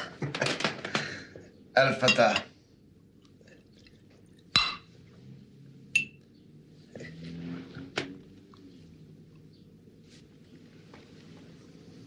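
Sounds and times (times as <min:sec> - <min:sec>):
drinking glasses clinking: 0:02.0 - 0:02.5, 0:04.6 - 0:04.9, 0:06.0 - 0:06.2.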